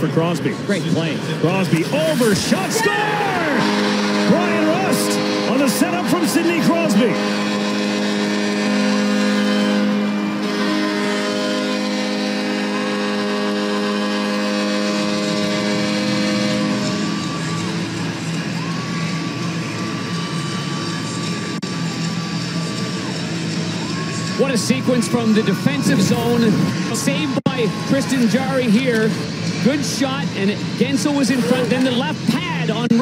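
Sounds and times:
crowd cheering: 0:01.3 - 0:33.0
arena goal horn blast: 0:01.8 - 0:20.4, 0:24.2 - 0:32.3
goal music: 0:02.4 - 0:17.4.

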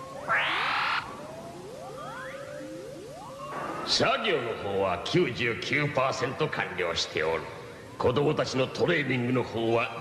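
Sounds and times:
quick rising electronic bleeps: 0:00.0 - 0:04.0
steady electronic tone: 0:00.0 - 0:04.5.

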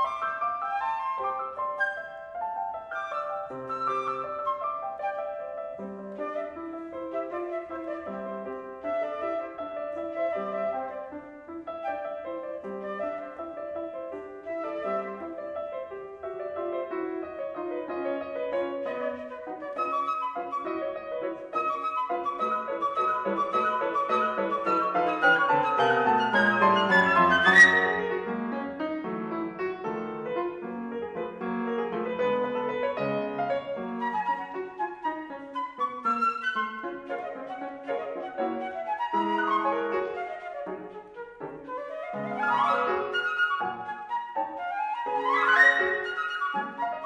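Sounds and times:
flute: 0:00.0 - 0:30.6, 0:31.2 - 0:47.0
piano: 0:00.0 - 0:47.0.

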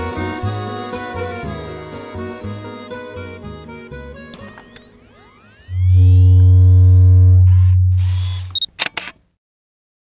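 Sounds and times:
steady tones: 0:04.4 - 0:08.6
high beep: 0:04.4 - 0:08.7
deep low drone: 0:05.8 - 0:08.6
shutter-like clicks: 0:07.6 - 0:09.2.

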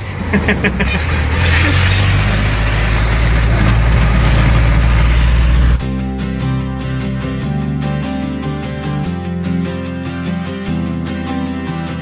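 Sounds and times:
person laughing: 0:00.0 - 0:01.9
truck engine and road noise: 0:00.0 - 0:07.7
acoustic guitar music: 0:00.0 - 0:12.0.

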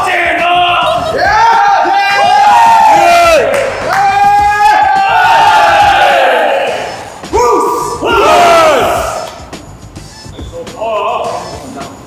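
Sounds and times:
people yelling and cheering: 0:00.0 - 0:09.4.

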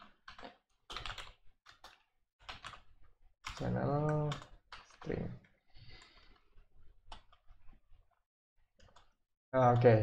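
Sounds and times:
faint typing on a keyboard: 0:00.0 - 0:08.2, 0:08.8 - 0:10.0.

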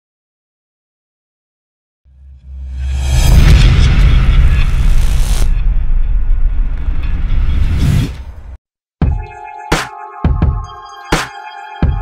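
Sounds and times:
boom with low rumbling tail: 0:03.0 - 0:07.6.

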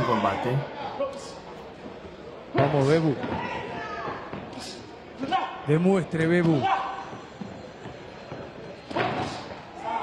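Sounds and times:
man shouting: 0:06.6 - 0:07.0.

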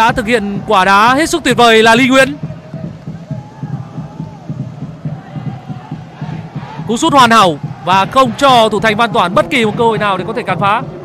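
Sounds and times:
stadium crowd chanting and cheering: 0:00.0 - 0:11.0.

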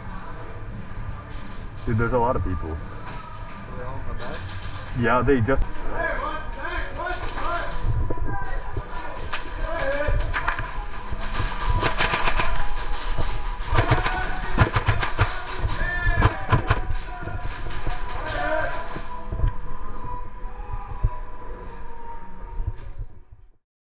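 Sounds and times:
airsoft guns firing bursts: 0:11.4 - 0:17.0.

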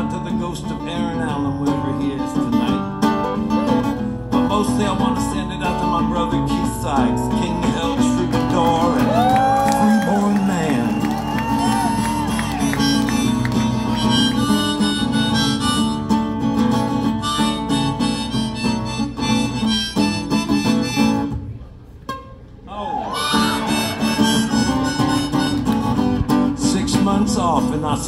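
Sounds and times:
strummed acoustic guitar: 0:00.0 - 0:09.4, 0:11.9 - 0:22.4, 0:23.2 - 0:28.0
harmonica: 0:11.8 - 0:21.5, 0:23.1 - 0:26.7.

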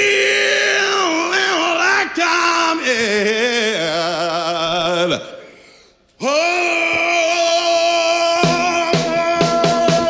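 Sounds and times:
man singing a held high note: 0:00.0 - 0:05.5, 0:06.2 - 0:10.0.

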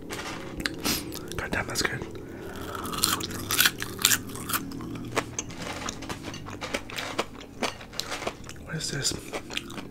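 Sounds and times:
chewing crispy food: 0:00.0 - 0:09.9.

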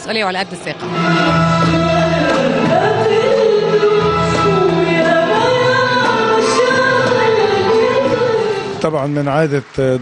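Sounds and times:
woman singing: 0:00.8 - 0:08.8.

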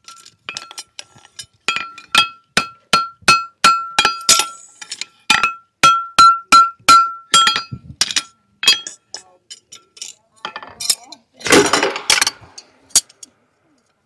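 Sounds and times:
hammer striking horseshoe on anvil: 0:01.7 - 0:04.6, 0:05.3 - 0:09.0.

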